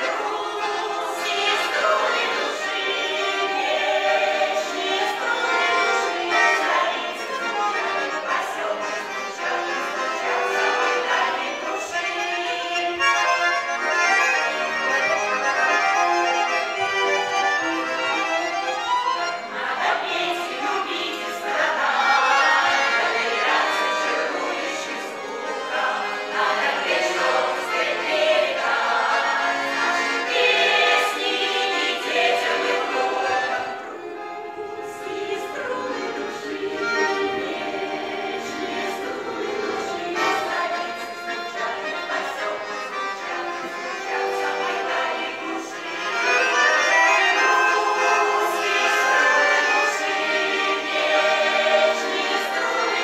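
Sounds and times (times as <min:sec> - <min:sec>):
accordion: 0:00.0 - 0:53.0
women's choir singing in harmony: 0:00.0 - 0:53.0.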